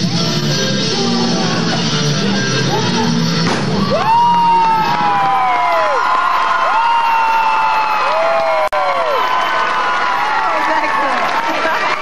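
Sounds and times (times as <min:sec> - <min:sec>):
audience cheering: 0:03.7 - 0:12.0
woo whoops: 0:03.8 - 0:10.6.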